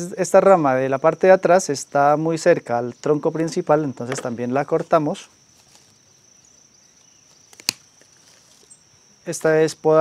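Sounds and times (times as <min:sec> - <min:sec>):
high-pitched insect drone: 0:00.0 - 0:10.0
branch cutters snipping branch: 0:07.3 - 0:08.4.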